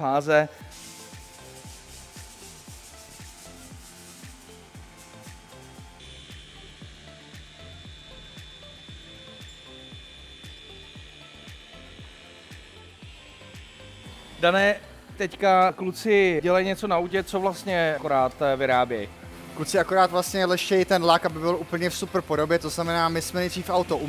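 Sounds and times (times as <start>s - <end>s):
background music with steady beat: 0.0s - 24.0s
electric machine polisher running: 0.5s - 24.0s.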